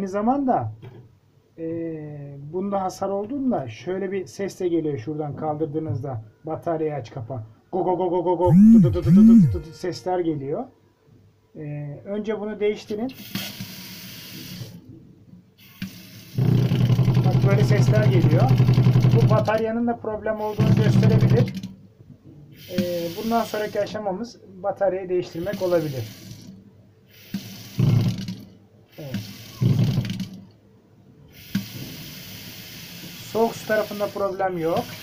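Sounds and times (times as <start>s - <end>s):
water gushing from tap: 27.2s - 28.4s, 29.0s - 30.2s, 31.4s - 35.0s.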